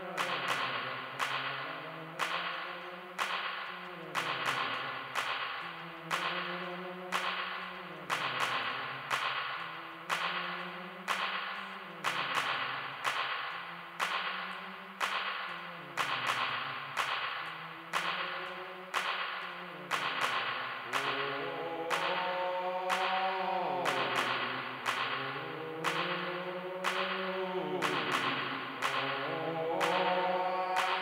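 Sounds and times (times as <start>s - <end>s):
snare-like hits: 0.0s - 31.0s.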